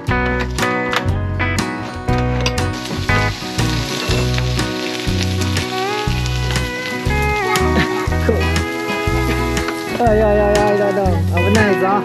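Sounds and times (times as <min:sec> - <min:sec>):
background music with guitar and bass: 0:00.0 - 0:12.0
meat sizzling on a grill plate: 0:02.6 - 0:12.0.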